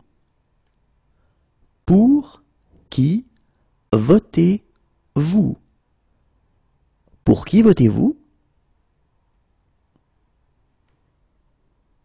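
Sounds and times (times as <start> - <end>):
person speaking: 1.8 - 5.8, 7.1 - 8.4.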